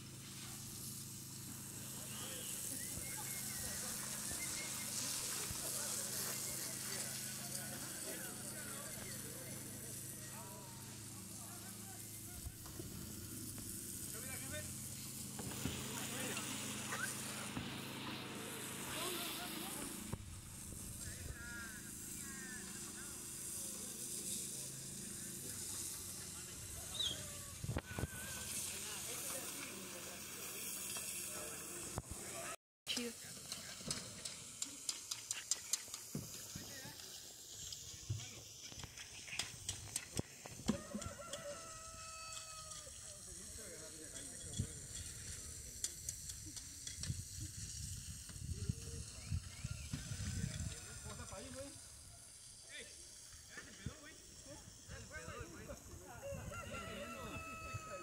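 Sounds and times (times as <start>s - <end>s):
distant workers' voices: 0.2s - 58.0s.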